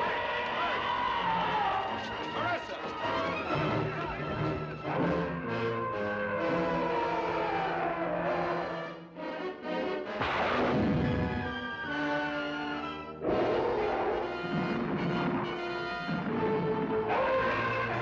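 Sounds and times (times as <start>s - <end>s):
dramatic orchestral music: 0.3s - 18.0s
loud crash: 10.2s - 11.5s.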